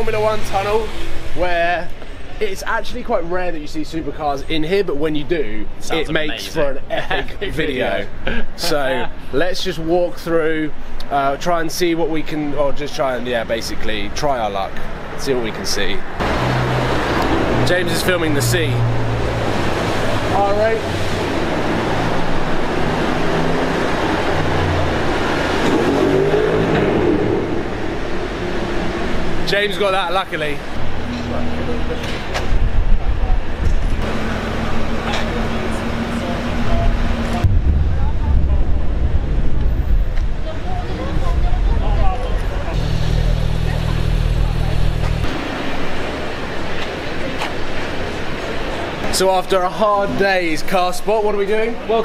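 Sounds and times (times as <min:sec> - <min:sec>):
voices: 0:00.0 - 0:16.2, 0:16.9 - 0:25.6, 0:28.4 - 0:39.5, 0:40.1 - 0:52.0
traffic noise in tunnel: 0:00.0 - 0:52.0
car engine revving: 0:16.2 - 0:29.7, 0:33.6 - 0:37.6, 0:42.7 - 0:46.6.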